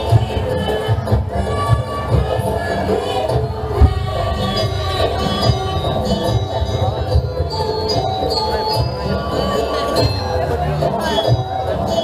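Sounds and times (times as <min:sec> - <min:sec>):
drum beats: 0:00.0 - 0:12.0
metal percussion ringing: 0:03.5 - 0:10.2.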